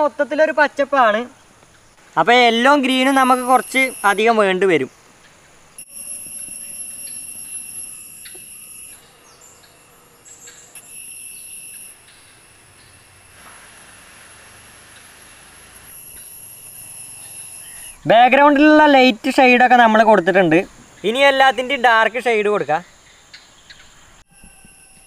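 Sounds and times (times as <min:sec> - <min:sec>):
insects chirring: 0:00.0 - 0:25.0
faint bird chirps: 0:02.9 - 0:13.2, 0:16.1 - 0:18.1.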